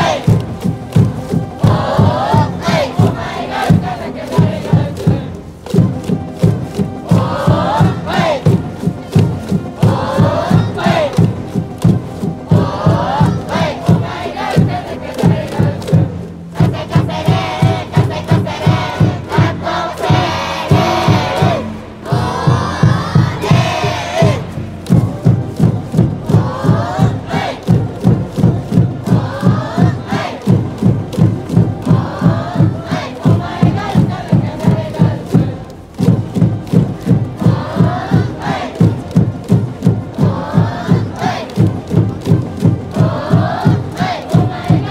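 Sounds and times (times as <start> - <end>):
band playing a fight song: 0.0 - 30.6
crowd chanting and shouting: 0.0 - 44.9
steady drumbeat: 0.0 - 44.9.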